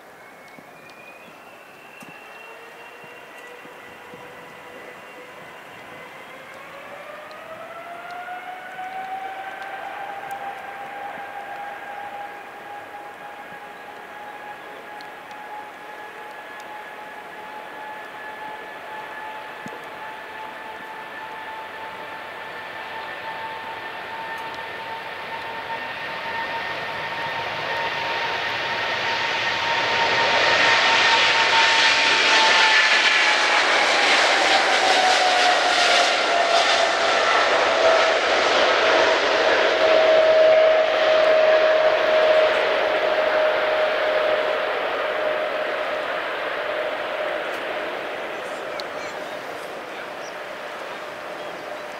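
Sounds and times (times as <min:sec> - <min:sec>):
jet engines passing by: 0:00.0 - 0:51.9.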